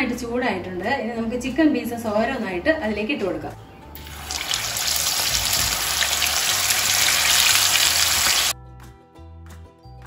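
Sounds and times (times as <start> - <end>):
background music with low bass: 0.0 - 10.0
chicken sizzling in hot oil: 4.0 - 8.6.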